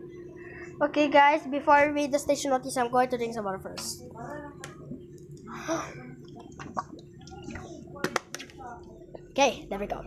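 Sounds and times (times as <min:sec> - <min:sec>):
person gulping water: 0:06.2 - 0:07.5.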